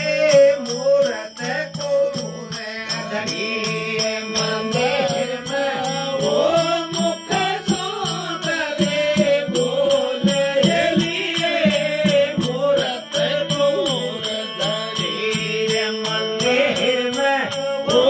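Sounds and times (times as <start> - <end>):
harmonium drone: 0.0 - 18.0
high-pitched percussive beat: 0.0 - 18.0
man singing devotional melody: 0.0 - 18.0.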